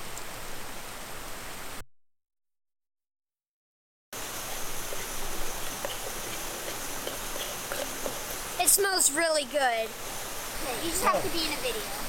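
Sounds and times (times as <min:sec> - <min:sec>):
creek water rushing: 0:04.2 - 0:12.0.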